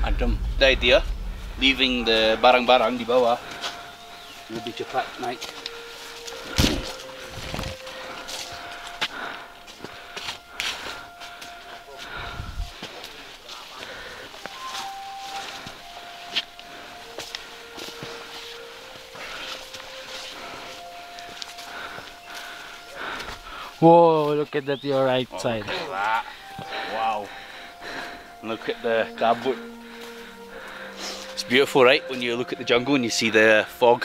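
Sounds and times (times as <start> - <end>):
low rumbles: 0.0 - 5.2, 6.4 - 14.8
faint drawn-out steady tones: 0.0 - 34.0
vegetation brushing: 2.0 - 32.4
footsteps on forest trail: 2.7 - 32.8.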